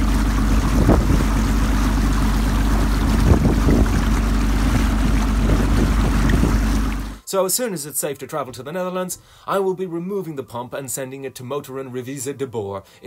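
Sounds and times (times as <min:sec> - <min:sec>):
boat diesel engine running: 0:00.0 - 0:07.2
water rushing along hull: 0:00.0 - 0:07.2.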